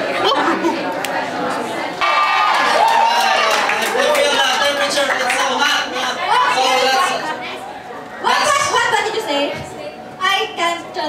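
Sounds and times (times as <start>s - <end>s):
background chatter in hall: 0.0s - 11.0s.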